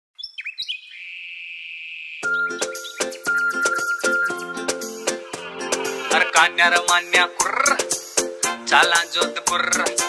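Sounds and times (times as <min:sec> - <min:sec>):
bird-like chirps: 0:00.2 - 0:05.0
high-pitched tone: 0:02.2 - 0:07.8.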